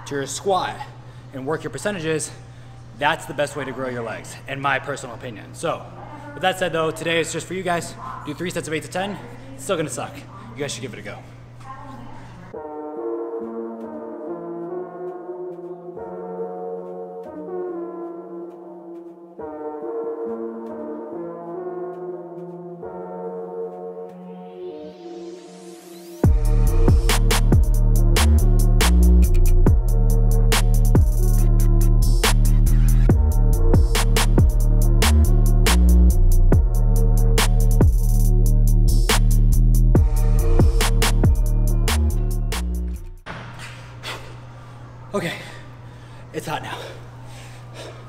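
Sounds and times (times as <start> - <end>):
electronic music: 12.6 - 43.2
man breathing hard: 43.6 - 48.0.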